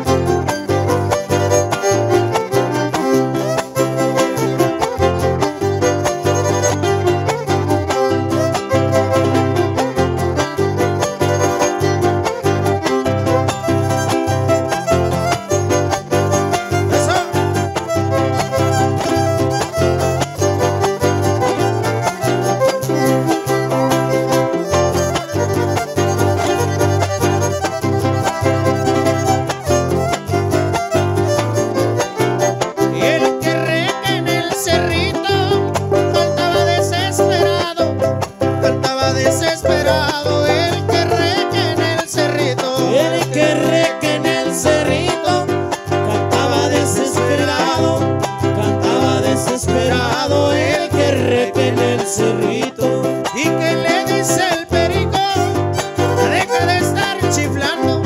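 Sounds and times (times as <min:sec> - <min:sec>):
steady bass rhythm: 0:00.0 - 0:43.8
strummed small guitar: 0:00.0 - 0:58.0
violin melody: 0:00.0 - 0:58.0.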